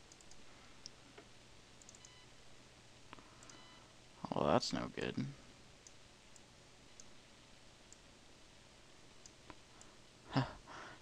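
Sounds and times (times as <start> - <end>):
computer mouse clicks: 0.0 - 2.2, 3.1 - 3.7
low steady hum: 0.0 - 11.0.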